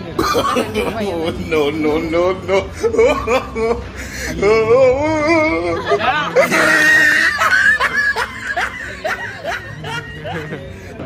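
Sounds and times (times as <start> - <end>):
men chuckling and laughing: 5.0 - 11.0.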